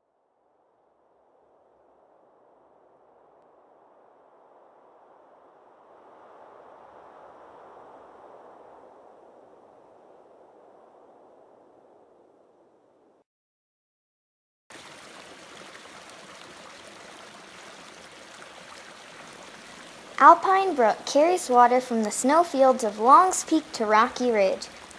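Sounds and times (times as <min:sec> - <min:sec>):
mountain brook rushing: 0:14.7 - 0:24.9.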